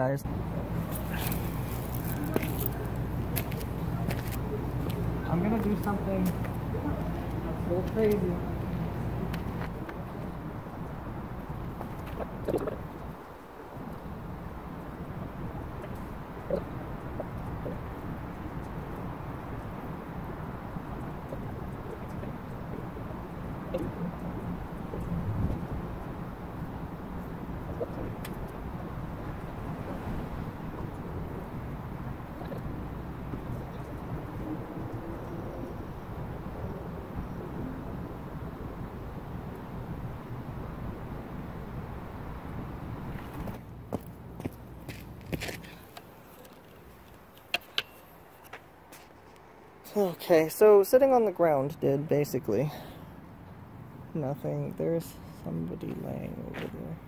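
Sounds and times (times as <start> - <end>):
low outdoor rumble: 0.0 - 57.0.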